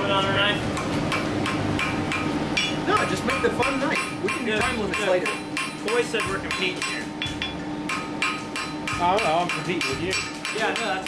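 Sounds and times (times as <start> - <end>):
hammer striking steel on anvil: 0.7 - 11.0.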